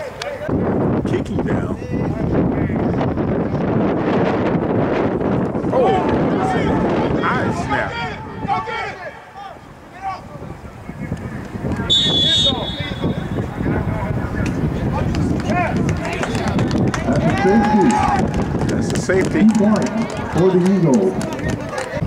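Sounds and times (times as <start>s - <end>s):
voices calling and shouting: 5.4s - 22.0s
referee's whistle blast: 11.9s - 13.5s.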